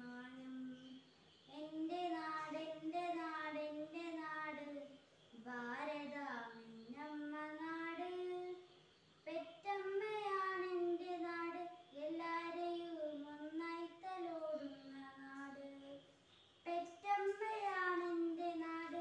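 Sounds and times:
girl singing unaccompanied: 0:00.0 - 0:19.0.

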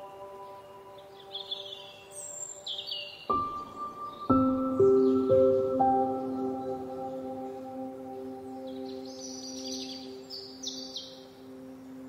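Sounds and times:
soft ambient bell-like music: 0:00.0 - 0:12.0.

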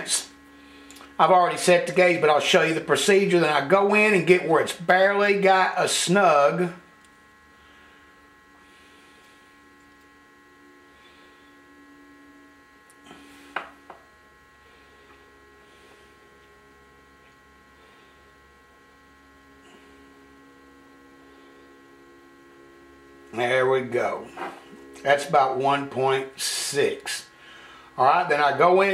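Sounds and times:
faint electrical mains hum: 0:00.0 - 0:28.9.

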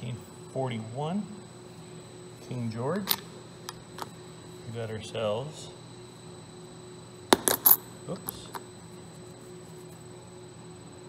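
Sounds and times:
coins clinking: 0:07.4 - 0:08.6.

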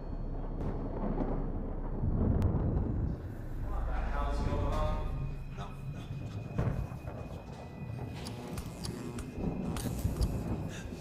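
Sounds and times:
deep storm rumble: 0:00.0 - 0:08.1.

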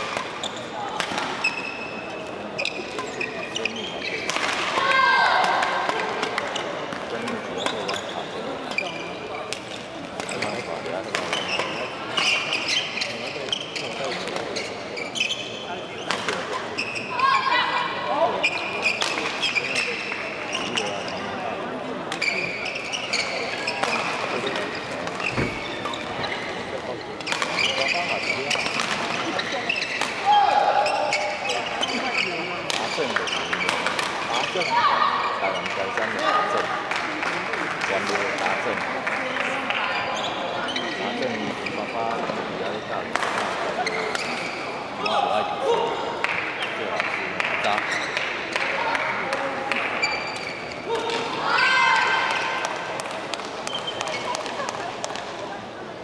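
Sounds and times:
racket hitting shuttlecock: 0:00.0 - 0:01.8, 0:04.2 - 0:08.0
rackets hitting shuttlecock: 0:00.0 - 0:12.7, 0:18.8 - 0:19.9, 0:23.7 - 0:26.0, 0:27.2 - 0:31.2, 0:32.6 - 0:34.5, 0:43.1 - 0:44.5
shoes squeaking on court floor: 0:00.0 - 0:30.2, 0:30.8 - 0:36.4, 0:39.5 - 0:45.4, 0:47.7 - 0:55.6.

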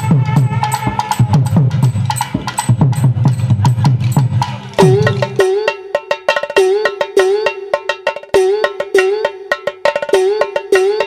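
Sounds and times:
quick sharp percussion strikes: 0:00.0 - 0:11.0.

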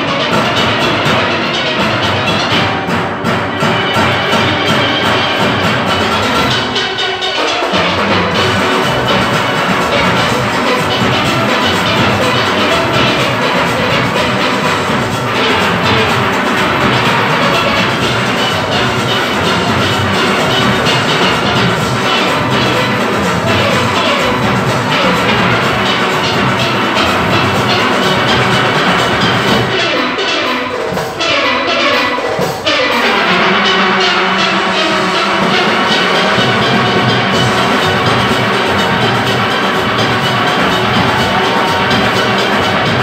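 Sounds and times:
steel orchestra playing: 0:00.0 - 0:43.0.

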